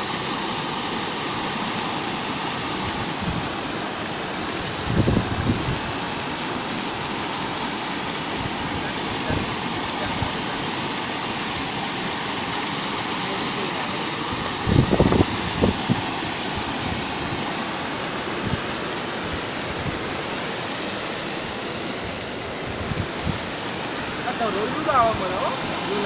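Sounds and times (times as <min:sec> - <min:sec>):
floodwater rushing over causeway: 0:00.0 - 0:26.0.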